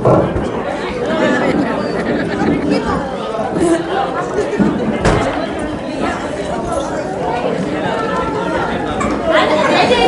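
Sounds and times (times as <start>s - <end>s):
audience chatter in large hall: 0.0s - 10.0s.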